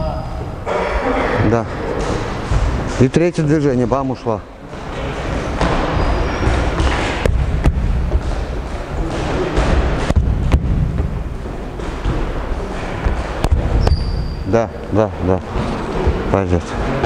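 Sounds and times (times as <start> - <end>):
steady background noise: 0.0 - 17.0
sneakers on wooden floor: 4.6 - 16.4
sharp knocks: 4.7 - 14.2.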